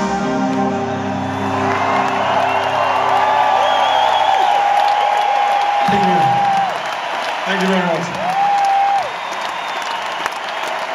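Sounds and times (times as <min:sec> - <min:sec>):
crowd applauding and cheering: 0:00.0 - 0:10.9
long sliding whistle: 0:00.7 - 0:05.2.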